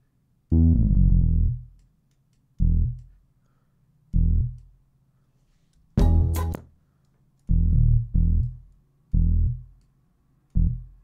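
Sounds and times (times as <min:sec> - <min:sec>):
low synth bass notes: 0:00.5 - 0:01.8, 0:02.6 - 0:03.1, 0:04.2 - 0:04.7, 0:07.5 - 0:09.8, 0:10.6 - 0:11.0.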